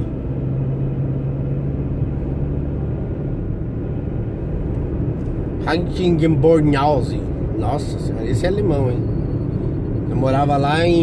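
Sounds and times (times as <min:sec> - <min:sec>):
vehicle engine and road rumble: 0:00.0 - 0:11.0.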